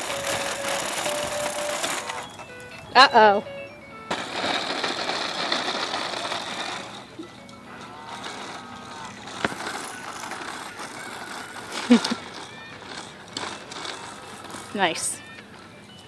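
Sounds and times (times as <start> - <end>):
electronic toy tune: 0.0 - 16.0
plastic wheels rattling on asphalt: 0.0 - 16.0.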